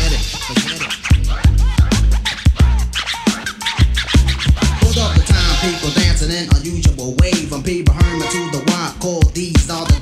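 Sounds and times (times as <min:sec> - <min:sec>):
deep bass: 0:00.0 - 0:03.1, 0:03.8 - 0:10.0
drum machine beat: 0:00.0 - 0:10.0
turntable scratching: 0:00.0 - 0:10.0.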